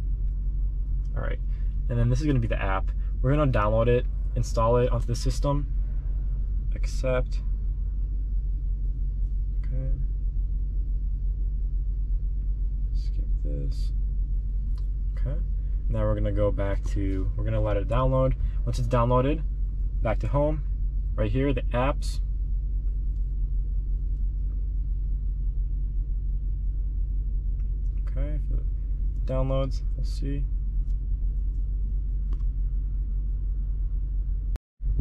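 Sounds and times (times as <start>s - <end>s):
car engine idling: 0.0s - 35.0s.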